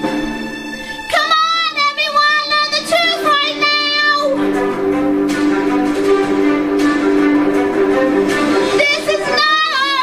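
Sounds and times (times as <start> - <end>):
held string-like notes: 0.0 - 10.0
woman singing with vibrato: 1.1 - 4.4, 8.6 - 10.0.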